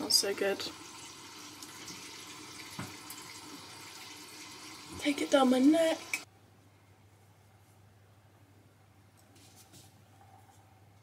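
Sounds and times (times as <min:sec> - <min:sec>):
tap water running: 0:00.0 - 0:06.3.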